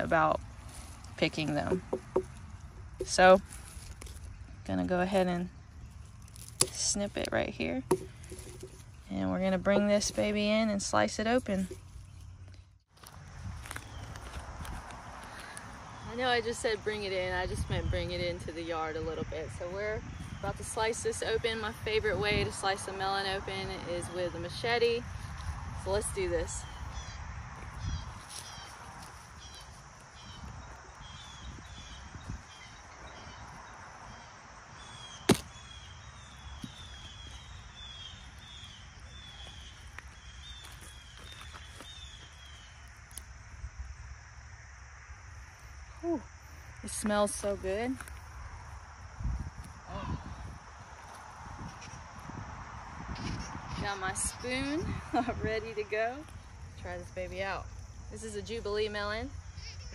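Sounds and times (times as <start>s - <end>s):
footsteps on wood-chip mulch: 0.0s - 16.4s, 25.1s - 43.2s, 50.6s - 52.4s
machete chopping watermelon: 7.8s - 8.8s, 35.2s - 35.6s.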